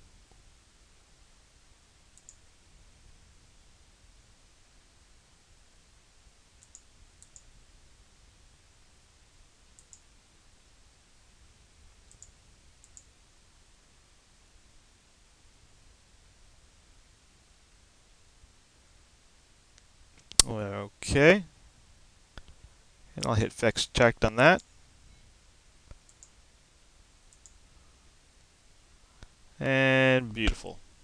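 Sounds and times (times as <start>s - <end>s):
faint computer mouse clicks: 2.2s - 2.4s, 6.6s - 7.5s, 9.8s - 10.0s, 12.1s - 13.1s, 25.9s - 26.4s, 27.3s - 27.6s.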